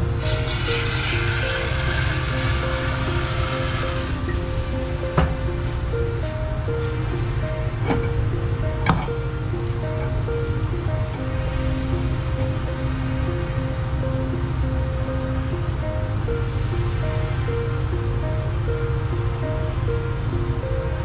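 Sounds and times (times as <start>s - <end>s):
slow sustained background music: 0.0s - 21.0s.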